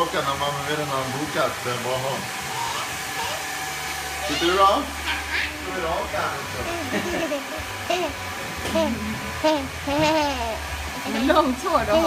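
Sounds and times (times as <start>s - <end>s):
hair dryer running: 0.0s - 12.0s.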